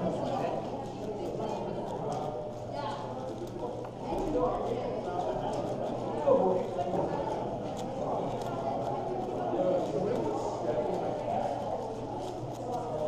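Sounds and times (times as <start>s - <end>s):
murmur of background chatter: 0.0s - 13.0s.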